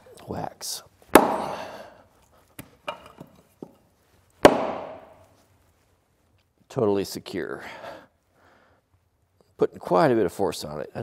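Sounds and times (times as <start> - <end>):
axe striking wood: 1.1 - 1.7, 4.4 - 5.2.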